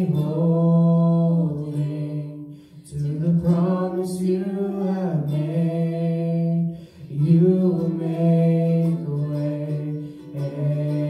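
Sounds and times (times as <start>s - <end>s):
voices singing a long note: 0.0s - 11.0s.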